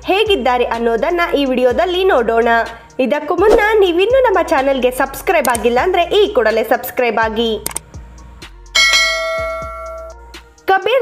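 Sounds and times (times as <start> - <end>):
faint background music: 0.0 - 11.0
bell chime ringing: 8.8 - 10.1.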